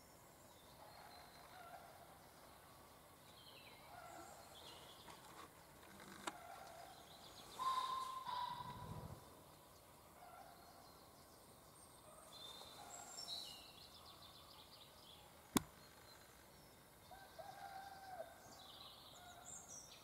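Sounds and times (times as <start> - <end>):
woodland birdsong: 0.0 - 20.0.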